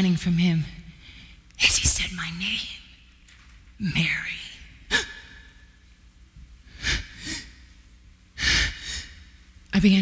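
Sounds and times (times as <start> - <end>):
woman gasping: 6.7 - 7.6.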